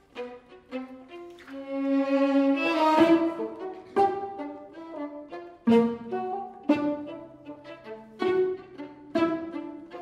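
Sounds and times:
bassoon and string quartet: 0.0s - 10.0s.

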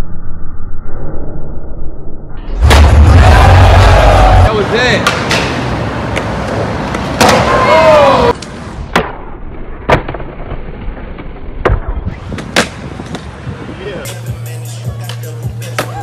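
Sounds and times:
skateboard wheels rolling on concrete: 2.8s - 16.0s
skateboard tail popping and landing: 8.4s - 13.3s.

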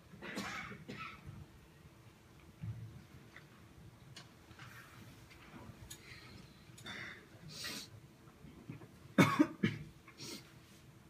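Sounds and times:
person coughing: 0.2s - 1.2s, 9.2s - 9.9s.

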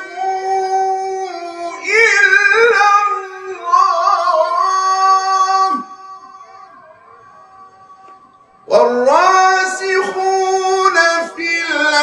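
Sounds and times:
man reciting in melodic chant: 0.0s - 12.0s.

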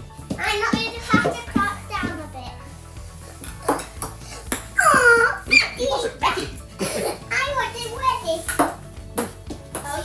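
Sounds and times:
ping pong ball tapping: 3.5s - 5.1s, 8.5s - 10.0s
child squealing: 4.8s - 6.5s.

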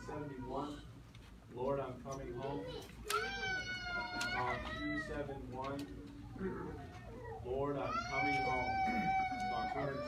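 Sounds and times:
small child wailing: 2.7s - 5.2s, 7.0s - 10.0s.

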